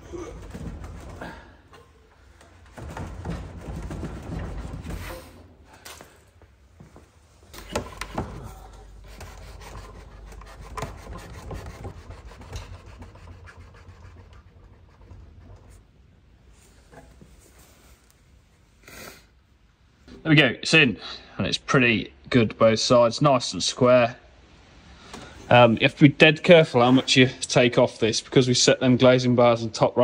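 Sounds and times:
wood knocks and creaks: 0:00.0 - 0:05.6, 0:06.8 - 0:13.9
wooden joint rubbing and scraping: 0:07.5 - 0:16.0.

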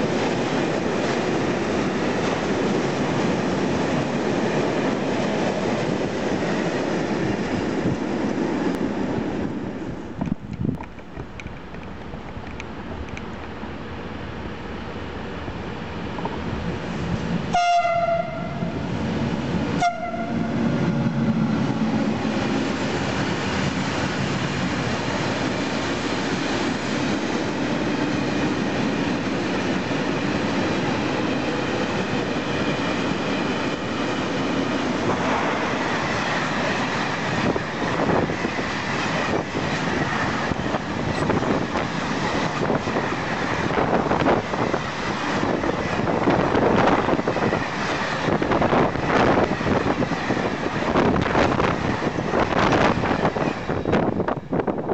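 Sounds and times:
freight train rumbling past: 0:00.0 - 0:54.9
train horn blasts: 0:17.5 - 0:18.8, 0:19.8 - 0:20.6.

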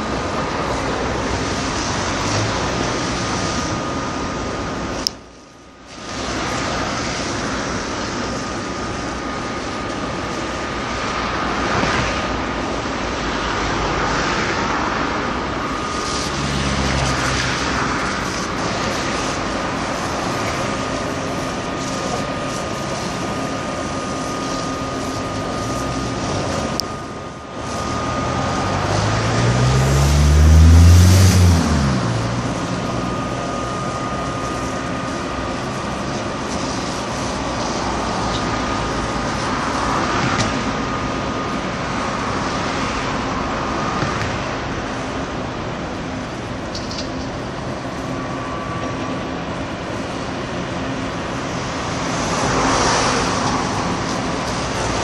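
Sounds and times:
passing vehicles: 0:00.0 - 0:55.0
vehicle passing loudly: 0:13.2 - 0:19.9, 0:27.6 - 0:34.7.

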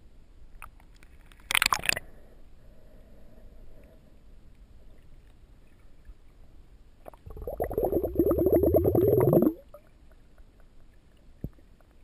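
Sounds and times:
underwater air bubbles burbling: 0:07.1 - 0:09.8.

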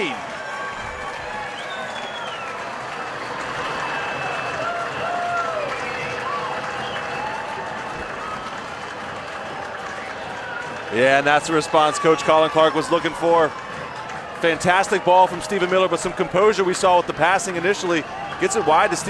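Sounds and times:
crowd clapping: 0:00.0 - 0:19.0
crowd shouts: 0:00.0 - 0:19.0.

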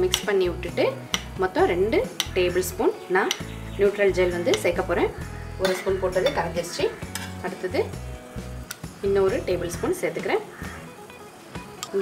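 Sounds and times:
metal spoon clinking on glass bowl: 0:05.6 - 0:06.6.

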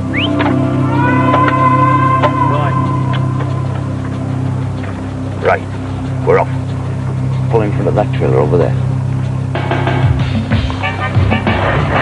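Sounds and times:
background music: 0:00.0 - 0:12.0
low machine hum: 0:00.0 - 0:12.0
people shouting: 0:00.7 - 0:04.0.

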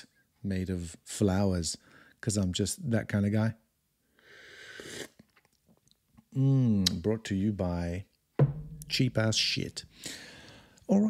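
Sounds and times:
slurping sip from a mug: 0:04.7 - 0:05.4.

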